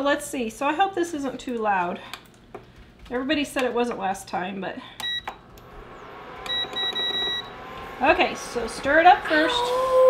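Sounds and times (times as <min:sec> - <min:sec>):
faint appliance hum: 0:00.0 - 0:10.0
electric burner beeps: 0:05.0 - 0:08.3.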